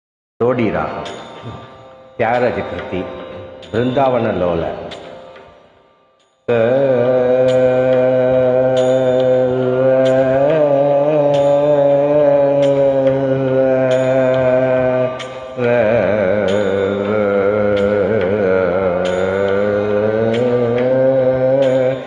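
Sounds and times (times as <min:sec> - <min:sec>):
man singing: 0:00.4 - 0:05.3, 0:06.5 - 0:22.0.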